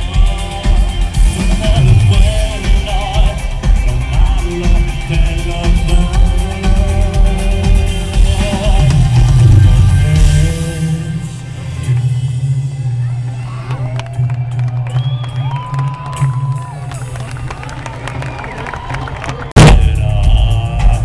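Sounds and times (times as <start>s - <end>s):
live synth-pop band music: 0.0s - 17.6s, 19.6s - 21.0s
low bass drone: 0.0s - 17.8s, 19.6s - 21.0s
crowd noise: 0.0s - 21.0s
synth glides: 8.8s - 14.4s.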